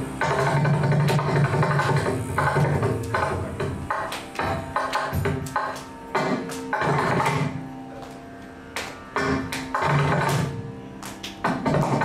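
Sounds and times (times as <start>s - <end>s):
hand drum strokes: 0.0s - 12.0s
steady low drone: 0.0s - 12.0s.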